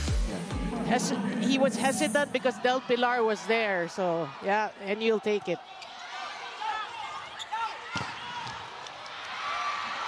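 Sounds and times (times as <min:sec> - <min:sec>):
arena crowd: 0:00.0 - 0:10.0.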